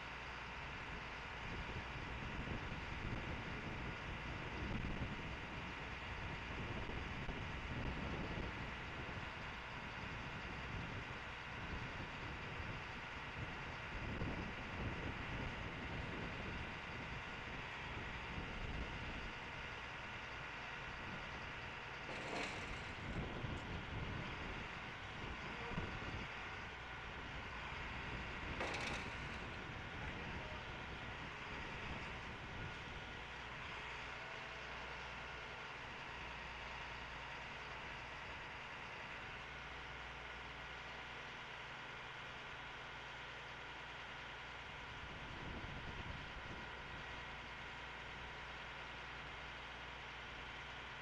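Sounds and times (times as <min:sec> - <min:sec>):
vehicle engine running: 0:00.0 - 0:43.8.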